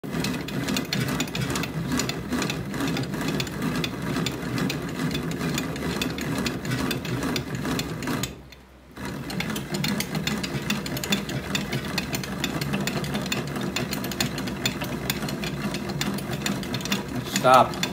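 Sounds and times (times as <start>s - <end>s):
bat-rolling machine clatter: 0.0s - 8.4s, 9.0s - 17.9s.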